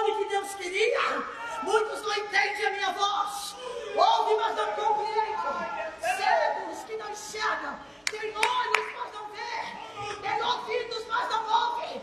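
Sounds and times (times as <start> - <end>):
sharp hand claps: 8.0 - 9.0.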